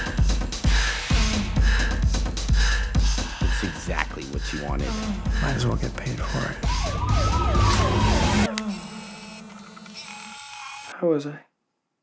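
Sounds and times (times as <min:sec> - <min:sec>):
dense film trailer music: 0:00.0 - 0:09.1
wavering siren-like wail: 0:06.6 - 0:09.4.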